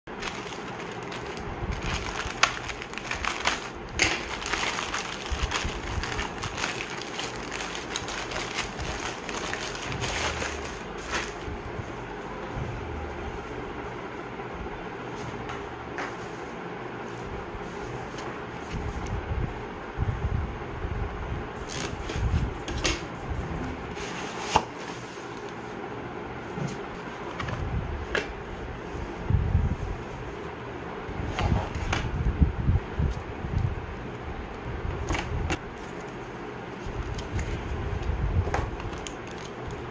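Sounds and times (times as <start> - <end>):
plastic mailer bag crinkling: 0.1 - 11.5, 38.7 - 39.9.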